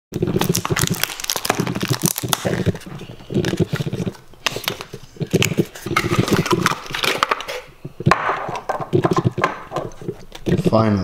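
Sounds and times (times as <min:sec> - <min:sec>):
cardboard box crinkling and scraping: 0:00.2 - 0:07.7.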